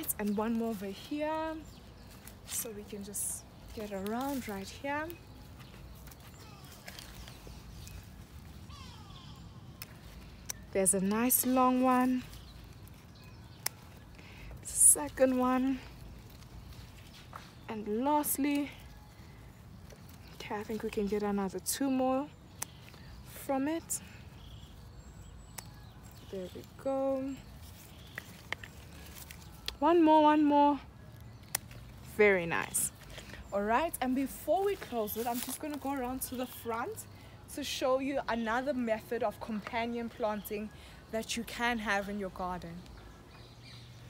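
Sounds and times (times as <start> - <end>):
plants rustling and clicking: 0.0 - 43.0.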